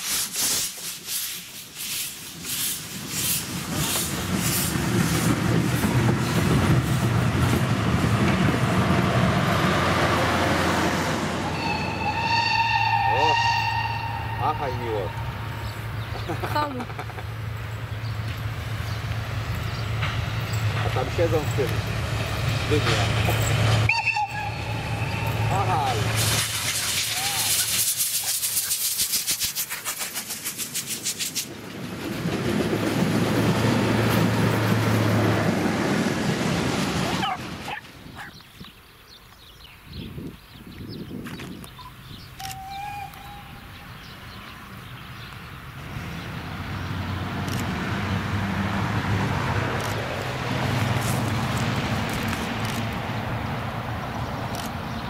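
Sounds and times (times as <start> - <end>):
steam hissing: 0.0 - 6.0, 24.6 - 31.6
steam locomotive exhaust beats: 0.0 - 16.2
steam train approaching: 0.0 - 37.8
train rumbling past: 0.8 - 29.2, 29.8 - 38.2, 41.8 - 55.0.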